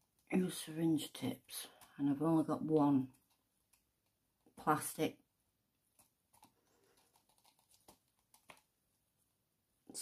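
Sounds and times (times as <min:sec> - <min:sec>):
stir stick scraping plastic cup: 0:06.0 - 0:08.7.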